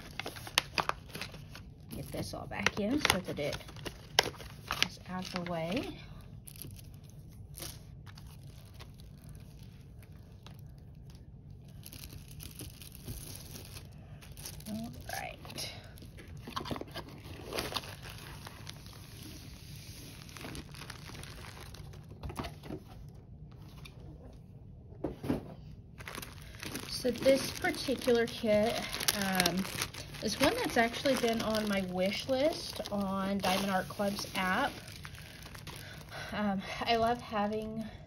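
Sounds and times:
plastic packaging crinkling: 0.0s - 22.6s, 26.0s - 37.6s.

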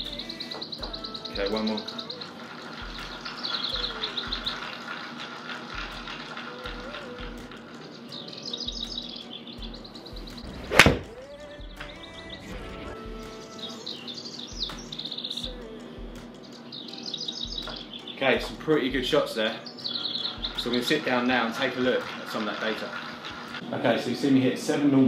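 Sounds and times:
background music: 0.0s - 25.0s
golf club hitting ball: 10.5s - 11.1s.

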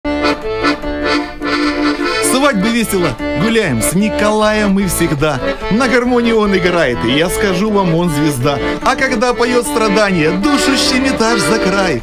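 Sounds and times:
piano accordion playing: 0.1s - 12.0s.

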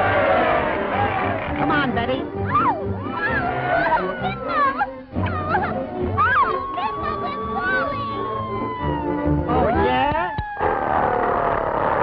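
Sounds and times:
high swooping cries: 5.4s - 9.4s.

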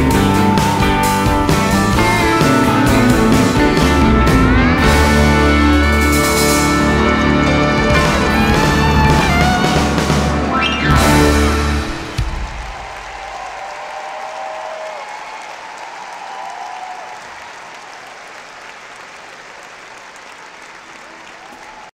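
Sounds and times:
band's last note: 0.0s - 12.6s
audience applauding: 0.0s - 22.0s
audience cheering: 0.0s - 22.0s.

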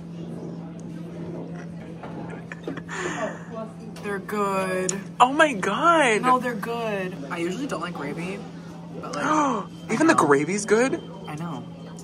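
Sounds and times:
murmur of diners' voices: 0.0s - 12.0s.

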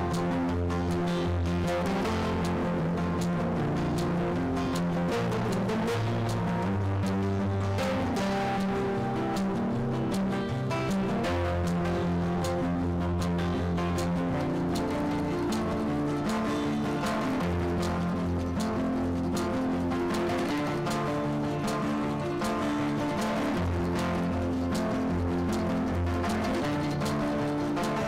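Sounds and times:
instrumental background music: 0.0s - 28.0s.

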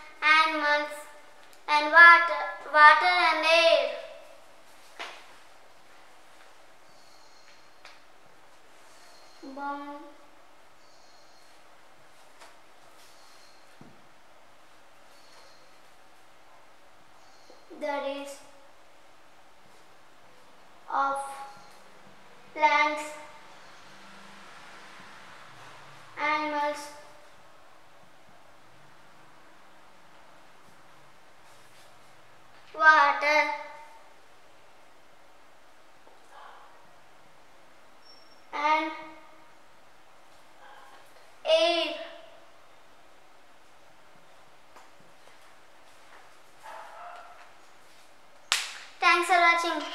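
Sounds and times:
faint background hiss: 0.0s - 49.9s
loud sharp snap: 48.4s - 49.0s.

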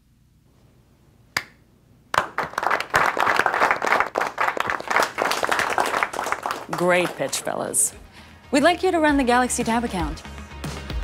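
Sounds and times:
small group clapping: 2.1s - 7.9s.

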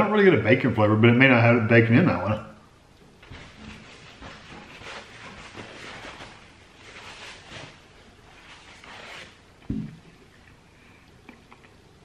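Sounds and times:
low thump: 9.7s - 10.0s.

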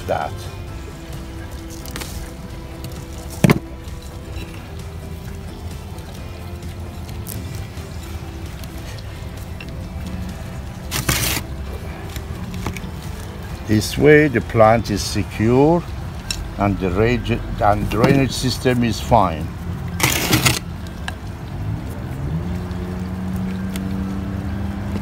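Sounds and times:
faint background music: 0.0s - 25.0s
soil scraping rustle: 1.3s - 14.0s, 17.6s - 20.9s.

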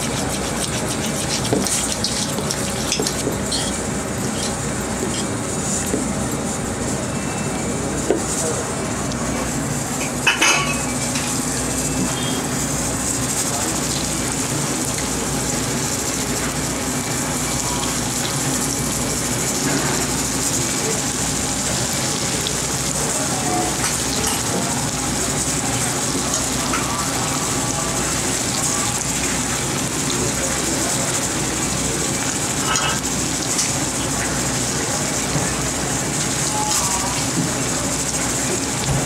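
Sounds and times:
oil sizzling with frying batter: 0.0s - 39.0s.

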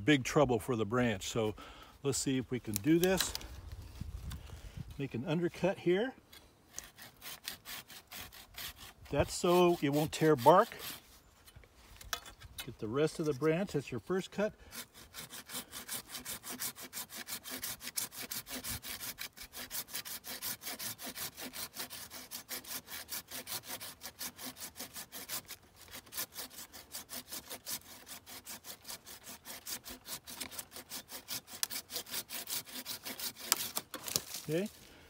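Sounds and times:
hand saw cutting branch: 2.6s - 3.6s, 5.6s - 35.0s.

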